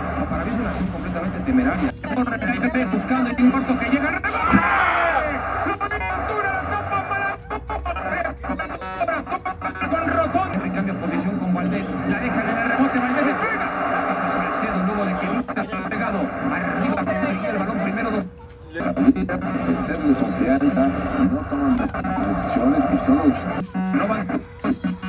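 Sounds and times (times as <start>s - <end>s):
broadcast music: 0.0s - 18.2s, 18.8s - 25.0s
stadium broadcast voices: 0.0s - 25.0s.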